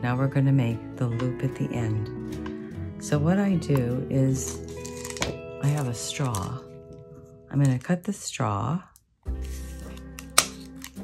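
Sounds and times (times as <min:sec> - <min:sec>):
background music: 0:00.0 - 0:07.8, 0:08.7 - 0:11.0
scissors cutting plastic straw: 0:04.4 - 0:06.6, 0:09.4 - 0:11.0.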